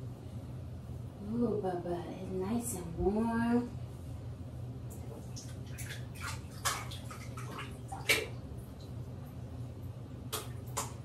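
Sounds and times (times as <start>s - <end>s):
steady low hum: 0.0s - 11.0s
bathwater splashing: 4.9s - 9.0s, 10.2s - 11.0s.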